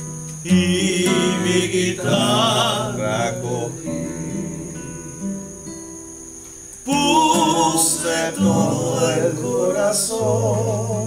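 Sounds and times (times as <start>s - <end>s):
acoustic guitar playing: 0.0s - 11.0s
man singing: 0.5s - 4.8s, 6.8s - 11.0s.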